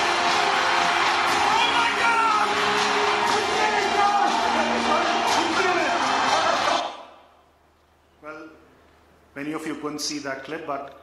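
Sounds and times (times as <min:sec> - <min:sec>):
music with voices: 0:00.0 - 0:06.9.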